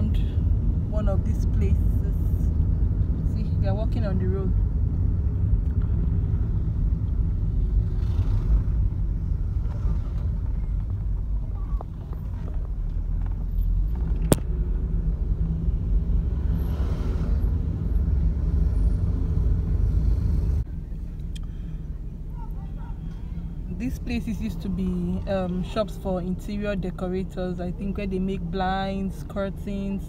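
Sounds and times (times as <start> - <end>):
car interior driving rumble: 0.0 - 30.0.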